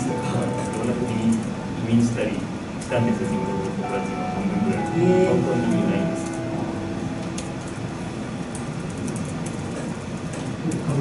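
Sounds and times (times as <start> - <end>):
low voices talking: 0.0 - 7.4.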